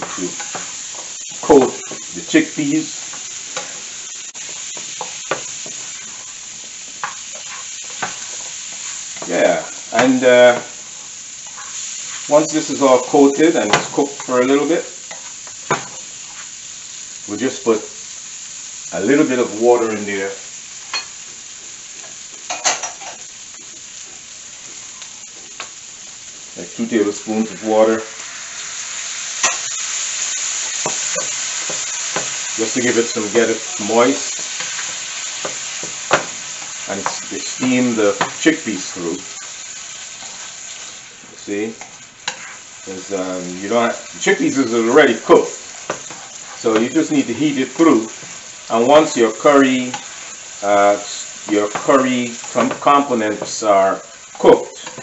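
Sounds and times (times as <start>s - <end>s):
spatula stirring: 0.0s - 16.6s, 30.5s - 41.0s, 41.7s - 42.8s, 44.1s - 47.3s, 47.9s - 50.6s
chickpeas sizzling in frying pan: 0.0s - 55.0s.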